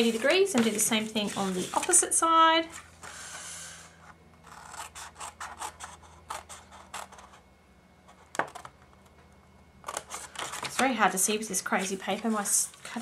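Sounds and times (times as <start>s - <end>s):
paper rustling: 0.0s - 2.1s, 9.9s - 13.0s.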